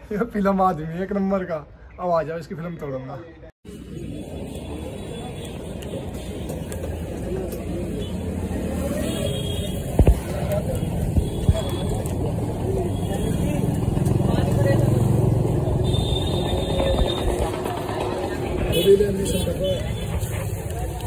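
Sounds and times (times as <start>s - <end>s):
street traffic: 0.0s - 21.0s
vehicle low rumble: 9.7s - 21.0s.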